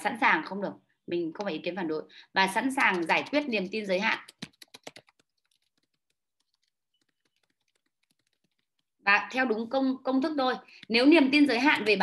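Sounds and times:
faint keyboard typing: 0:02.7 - 0:09.1.

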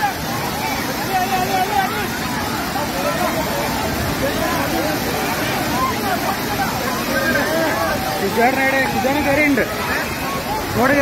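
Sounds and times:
people shouting: 0:00.0 - 0:10.8
roaring waterfall: 0:00.0 - 0:11.0.

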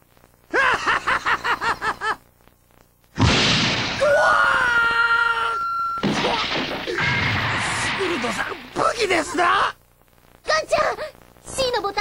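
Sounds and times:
cartoon rat screaming: 0:04.0 - 0:08.6.

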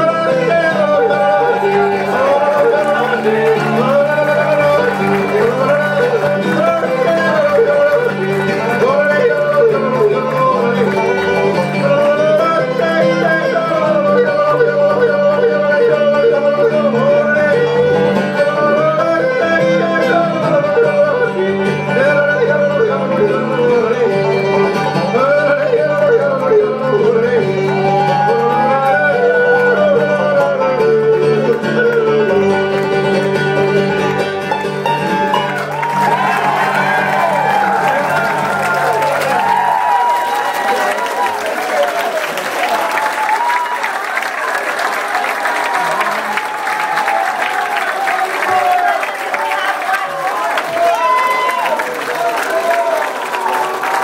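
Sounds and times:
man singing and yodeling: 0:00.0 - 0:41.0
bluegrass band playing: 0:00.0 - 0:42.0.

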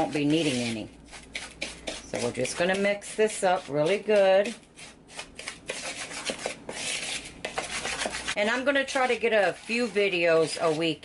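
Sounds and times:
spoon scraping dry crumbs: 0:00.0 - 0:11.0.

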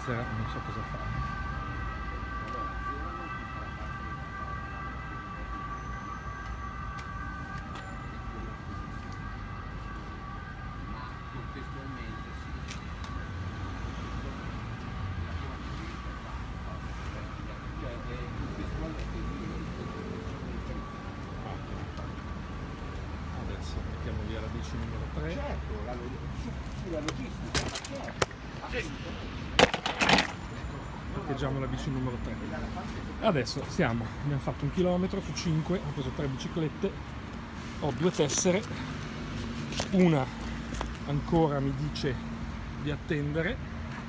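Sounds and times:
street traffic rumbling: 0:00.0 - 0:44.0.

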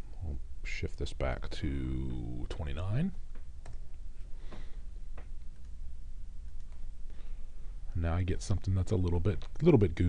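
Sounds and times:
low hum: 0:00.0 - 0:09.6.

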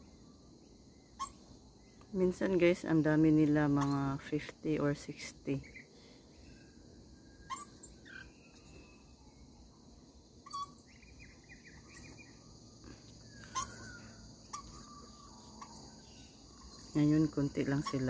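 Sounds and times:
parrots chirping: 0:01.2 - 0:01.6, 0:07.3 - 0:09.1, 0:10.4 - 0:12.5, 0:13.3 - 0:17.0.

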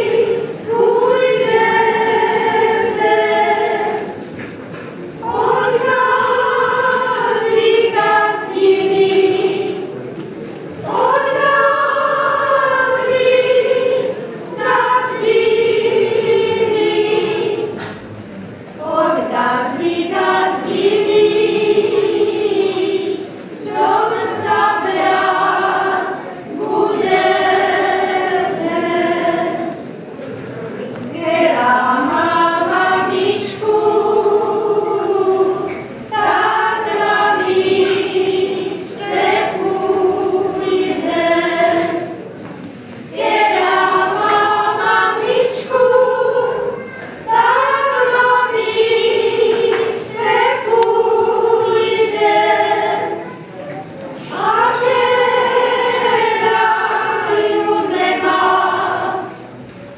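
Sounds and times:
women singing unaccompanied: 0:00.0 - 0:04.3, 0:05.2 - 0:10.0, 0:10.7 - 0:17.9, 0:18.8 - 0:29.9, 0:31.0 - 0:42.2, 0:43.0 - 0:53.3, 0:54.2 - 0:59.5.

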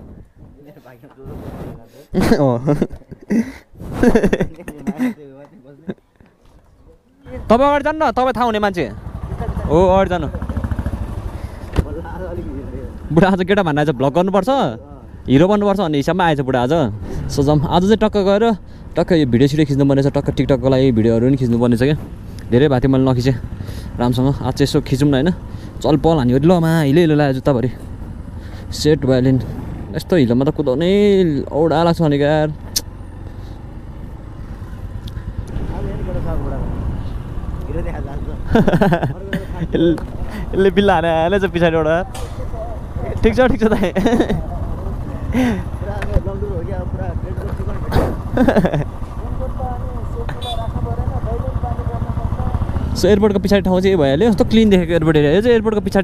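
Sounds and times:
wind noise: 0:00.0 - 0:01.9
motorcycle engine rumbling: 0:00.0 - 0:56.0
person speaking: 0:00.6 - 0:06.0
sharp click: 0:42.1 - 0:42.4.

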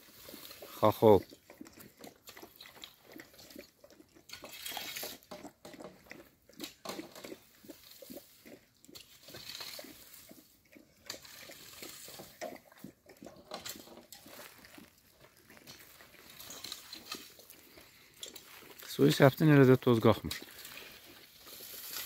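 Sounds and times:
dog chewing from a metal tray: 0:00.0 - 0:22.0
rake scraping dry leaves: 0:04.5 - 0:05.2, 0:09.1 - 0:10.3, 0:15.6 - 0:17.6, 0:18.4 - 0:22.0.

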